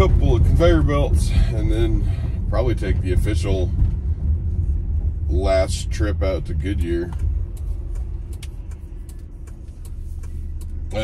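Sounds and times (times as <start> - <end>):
vehicle cabin road rumble: 0.0 - 11.0
turn signal ticking: 2.3 - 11.0.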